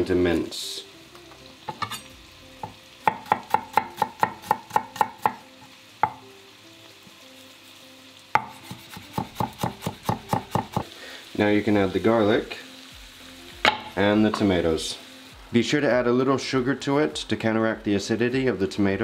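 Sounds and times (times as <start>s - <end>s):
knife chopping on plastic board: 8.4s - 10.8s.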